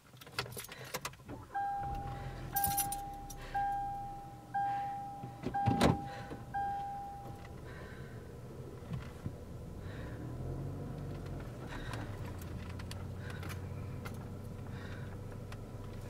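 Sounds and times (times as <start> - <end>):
keys rattling and clicking: 0.0 - 1.2, 2.0 - 3.6
car warning chime: 1.4 - 7.6.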